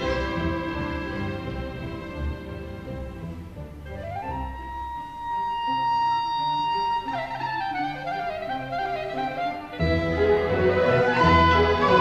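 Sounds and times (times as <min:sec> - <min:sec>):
orchestral classical music: 0:00.0 - 0:12.0.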